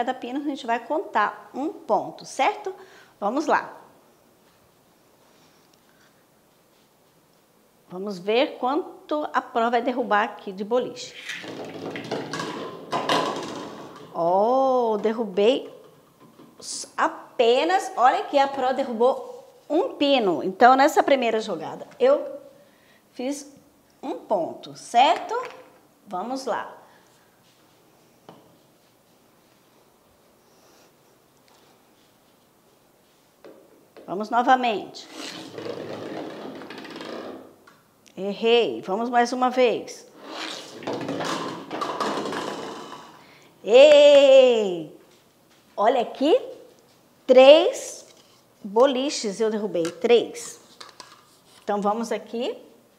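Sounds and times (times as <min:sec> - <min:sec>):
toy bowling pins clattering: 0:11.3 - 0:14.1, 0:40.8 - 0:43.2
plastic ball rolling on wood: 0:35.2 - 0:37.6, 0:40.2 - 0:43.2.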